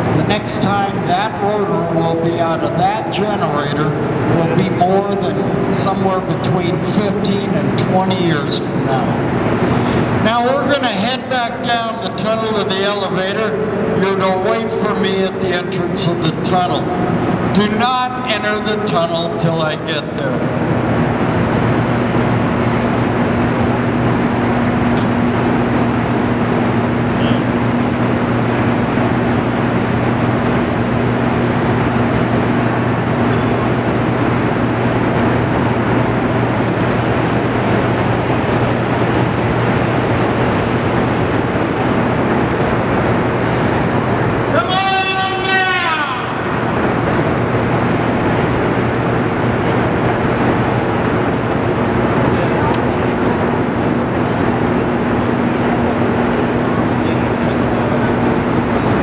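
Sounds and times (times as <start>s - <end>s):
generator hum and rumble: 0.0s - 59.0s.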